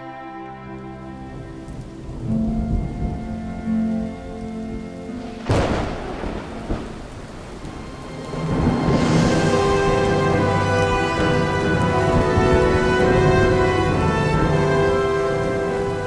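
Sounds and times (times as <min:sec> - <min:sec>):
heavy rain falling: 0:00.0 - 0:16.0
music: 0:00.0 - 0:16.0
thunder rumbling: 0:01.1 - 0:16.0
sharp thunderclap: 0:05.2 - 0:16.0.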